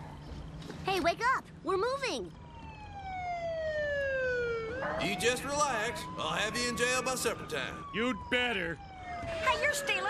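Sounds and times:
police siren wailing: 0:02.4 - 0:10.0.

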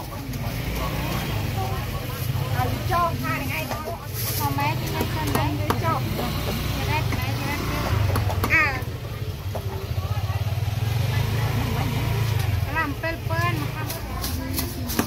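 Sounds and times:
low rumble of motor traffic: 0:00.0 - 0:15.0
people talking: 0:00.0 - 0:15.0.

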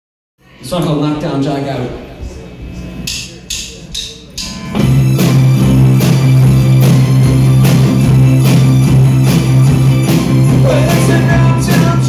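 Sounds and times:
rock band playing: 0:04.3 - 0:12.0.

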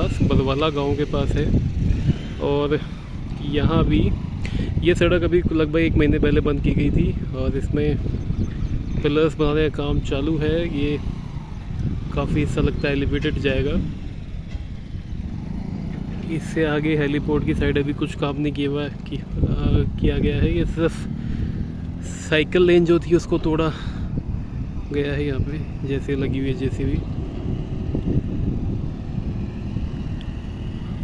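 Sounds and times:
wind on microphone: 0:00.0 - 0:16.2, 0:19.2 - 0:21.8, 0:23.8 - 0:31.0
low outdoor rumble: 0:00.0 - 0:31.0
vehicle road noise: 0:00.0 - 0:31.0.

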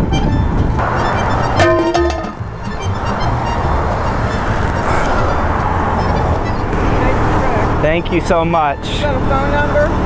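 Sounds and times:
background music: 0:00.0 - 0:04.6
cars driving past: 0:00.4 - 0:10.0.

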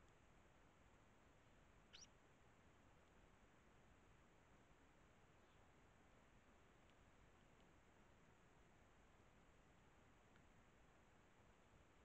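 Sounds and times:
sparrow chirp: 0:01.8 - 0:02.2.

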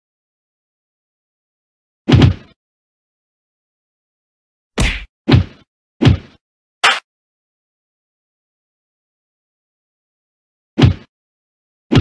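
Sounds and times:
punch sound effects: 0:04.8 - 0:06.2, 0:06.8 - 0:07.0.

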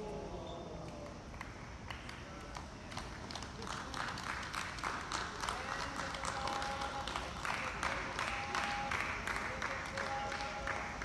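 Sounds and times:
crowd clapping: 0:00.9 - 0:11.0
people talking: 0:02.0 - 0:11.0.

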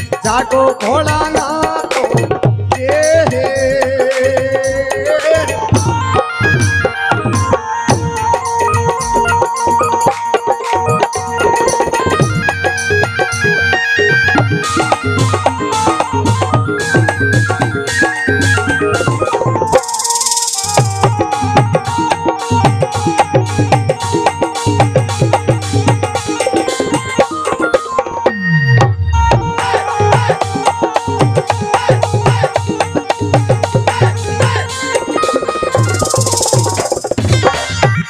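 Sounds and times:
hand drum beat: 0:00.0 - 0:38.0
held melody notes: 0:05.2 - 0:38.0
shimmering high rattle: 0:19.8 - 0:20.9, 0:34.8 - 0:37.2
hand drum strokes: 0:28.8 - 0:38.0.

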